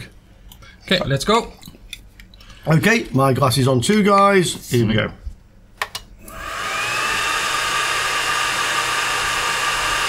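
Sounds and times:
cooling fan whirring: 0:05.9 - 0:10.0.

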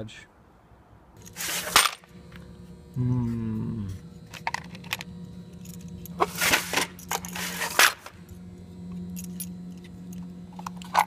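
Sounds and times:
steady electrical hum: 0:01.1 - 0:11.0.

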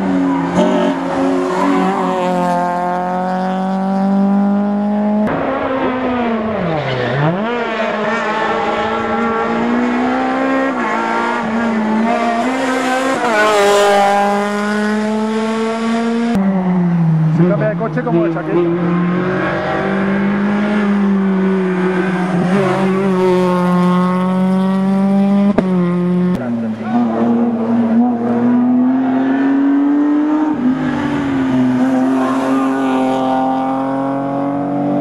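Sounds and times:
rally car engine at high revs: 0:00.0 - 0:35.0.

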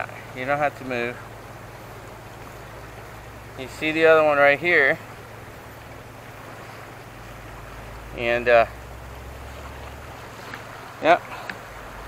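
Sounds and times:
river: 0:00.0 - 0:12.0
wind: 0:00.0 - 0:12.0.

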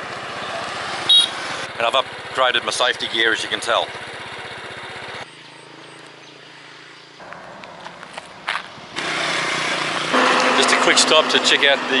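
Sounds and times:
motorbike engine idling: 0:00.0 - 0:12.0
rush of road noise: 0:00.0 - 0:12.0.

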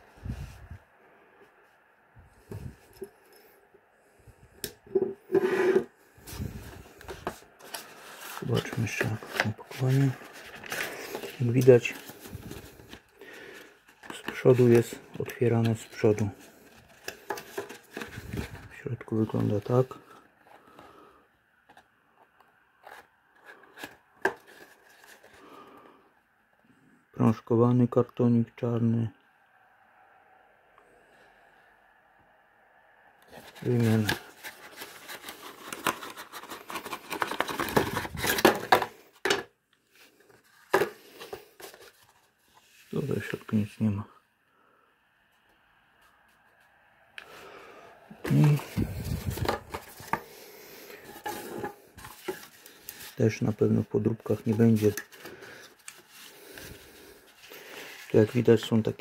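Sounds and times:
cardboard box scraping and rustling: 0:05.3 - 0:11.4, 0:33.3 - 0:38.9.

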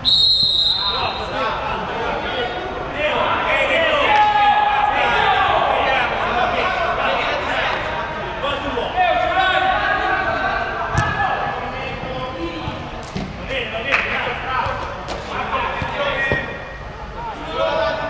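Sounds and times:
players shouting in a hall: 0:00.0 - 0:18.0.

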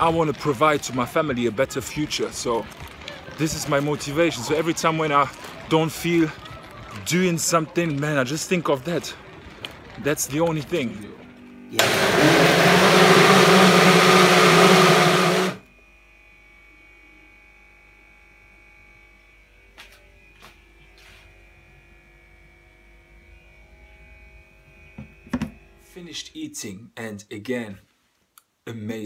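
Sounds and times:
blender running: 0:11.8 - 0:15.6.

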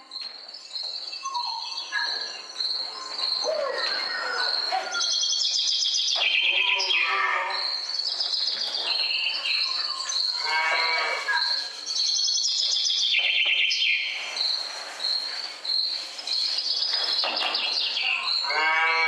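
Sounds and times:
birds chirping: 0:00.0 - 0:19.0
cow mooing: 0:18.5 - 0:19.0.

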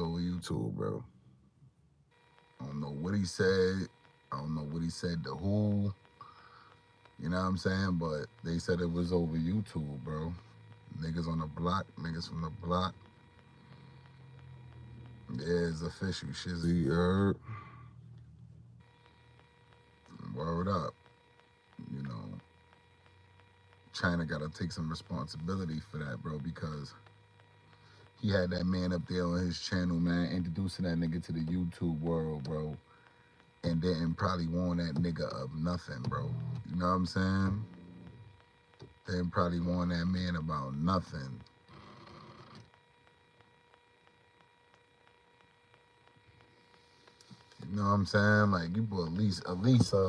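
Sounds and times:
faint steady electronic tone: 0:00.0 - 0:50.0
faint regular ticks: 0:02.1 - 0:50.0.

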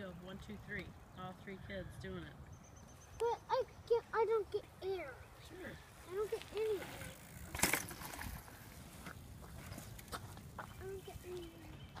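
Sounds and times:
child's voice calling: 0:03.2 - 0:05.3, 0:06.0 - 0:07.2, 0:10.8 - 0:11.8.

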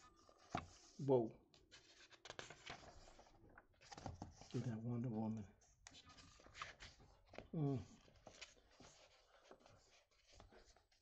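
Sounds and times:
faint paper rustling: 0:00.0 - 0:11.0.

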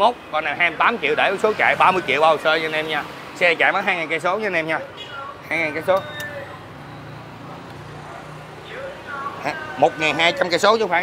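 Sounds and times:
low hum of road traffic: 0:00.0 - 0:11.0.

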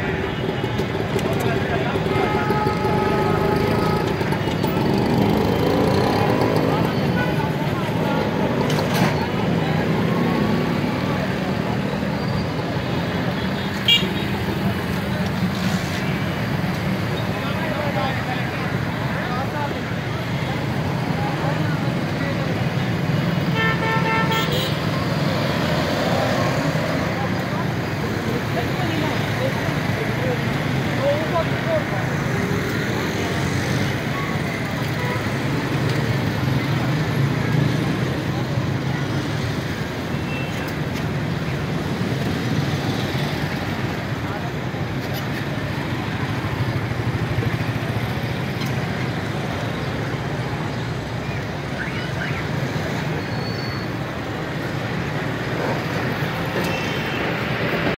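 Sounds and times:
motorcycles and cars running: 0:00.0 - 0:23.6, 0:24.3 - 0:57.9
vehicle horn: 0:02.1 - 0:04.2, 0:23.5 - 0:24.8.

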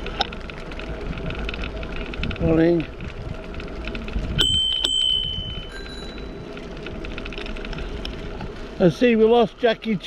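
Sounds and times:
low rumble of bicycle riding: 0:00.0 - 0:10.0
second bicycle bell ringing: 0:04.4 - 0:06.4
bicycle bell ringing: 0:04.4 - 0:06.6.

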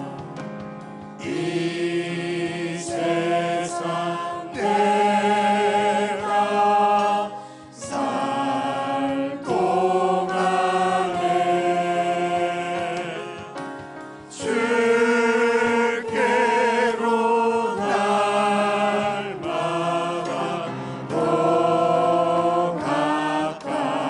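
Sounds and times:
organ accompaniment: 0:00.0 - 0:24.0
group singing a hymn: 0:01.2 - 0:24.0.

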